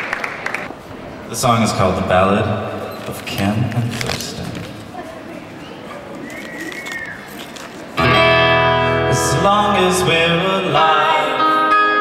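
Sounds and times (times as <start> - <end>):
acoustic guitar strumming: 8.0 - 12.0.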